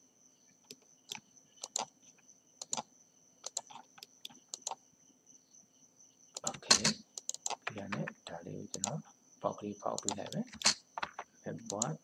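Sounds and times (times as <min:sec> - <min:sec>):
faint high-pitched whine: 0:00.0 - 0:12.0
mouse and keyboard clicks: 0:00.7 - 0:01.9, 0:02.6 - 0:02.8, 0:03.4 - 0:04.8, 0:06.4 - 0:09.0, 0:10.0 - 0:12.0.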